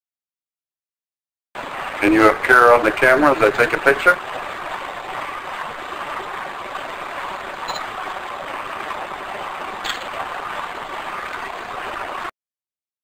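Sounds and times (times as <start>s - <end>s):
recorder background hiss: 1.6s - 12.2s.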